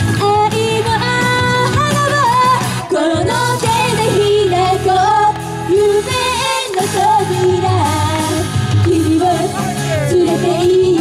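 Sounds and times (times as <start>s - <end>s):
pop song over loudspeakers: 0.0s - 11.0s.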